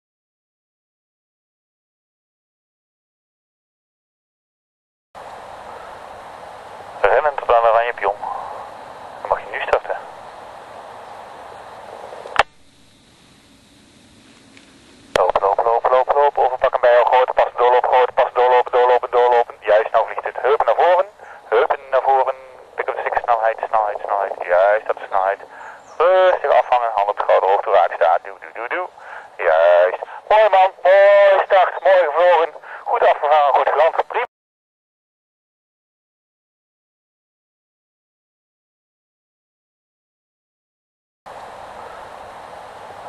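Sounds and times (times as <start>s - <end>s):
man's voice over two-way radio: 7.0s - 10.2s, 15.2s - 34.3s.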